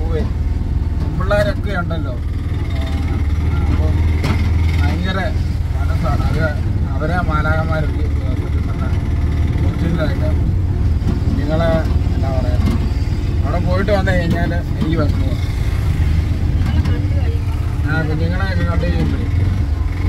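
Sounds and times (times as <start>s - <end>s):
auto-rickshaw engine running: 0.0s - 20.0s
voices talking: 1.0s - 20.0s.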